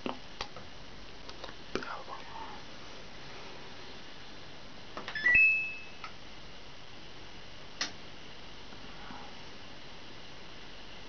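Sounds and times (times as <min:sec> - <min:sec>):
washing machine button beeps: 0:05.1 - 0:06.0.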